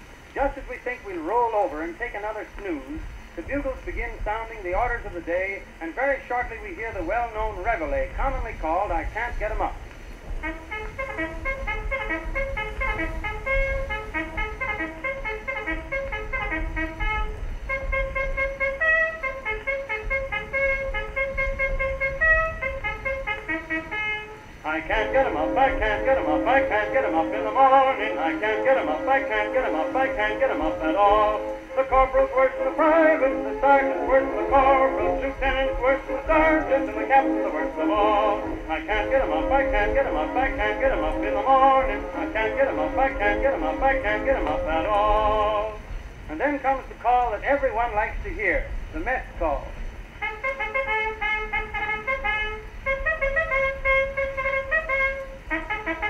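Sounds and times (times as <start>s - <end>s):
low background rumble: 0.0s - 56.0s
held notes: 9.0s - 45.9s, 50.2s - 56.0s
band playing: 10.4s - 45.7s, 50.2s - 56.0s.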